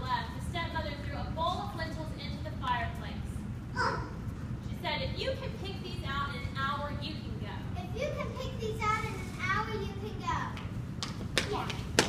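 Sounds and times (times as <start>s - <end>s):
low room noise: 0.0s - 12.0s
young child speaking: 3.8s - 4.2s, 7.8s - 10.6s.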